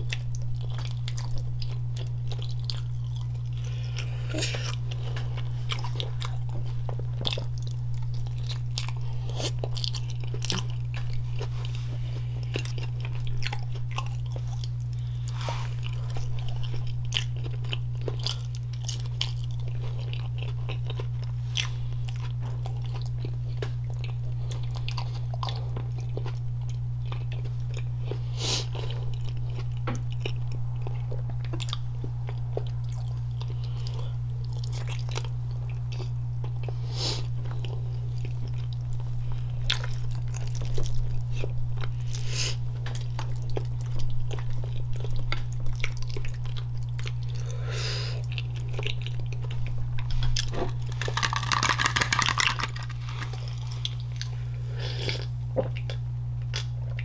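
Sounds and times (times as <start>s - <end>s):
chewing and biting food: 0.0s - 57.0s.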